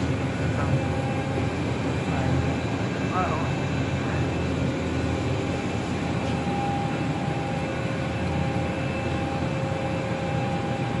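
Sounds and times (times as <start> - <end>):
machine mechanical hum: 0.0 - 11.0
thin whine tones: 0.0 - 11.0.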